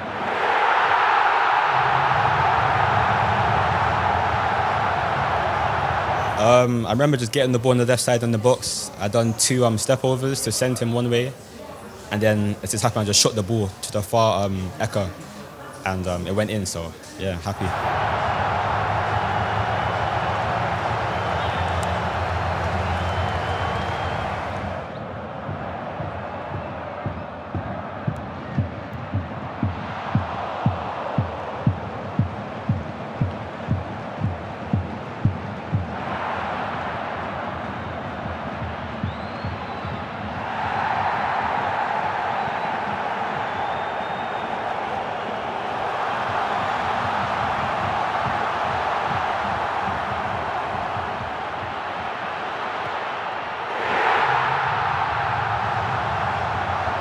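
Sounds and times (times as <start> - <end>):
stadium crowd cheering and singing: 0.0 - 57.0.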